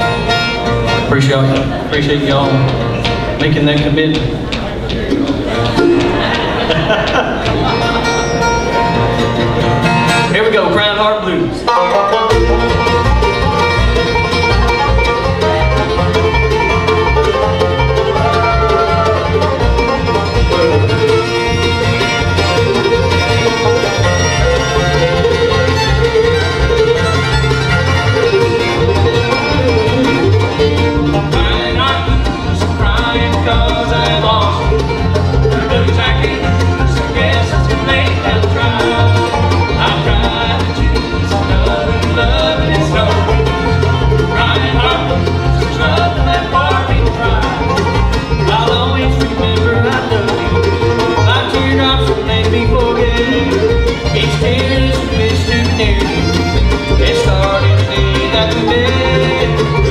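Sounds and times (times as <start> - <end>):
upright bass steady beat: 0.0 - 10.3, 12.3 - 59.9
acoustic guitar: 0.0 - 59.9
banjo: 0.0 - 59.9
mandolin: 0.0 - 59.9
fiddle: 4.8 - 59.9.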